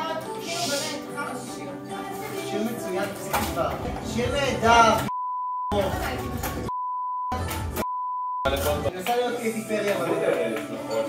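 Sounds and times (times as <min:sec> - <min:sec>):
music: 0:00.0 - 0:05.1, 0:05.7 - 0:11.0
voices: 0:00.0 - 0:05.1
censor bleep: 0:05.1 - 0:05.8, 0:06.7 - 0:08.5.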